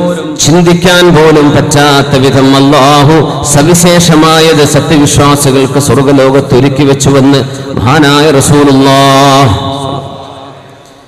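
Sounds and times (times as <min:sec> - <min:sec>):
man chanting into microphone: 0:00.0 - 0:10.8.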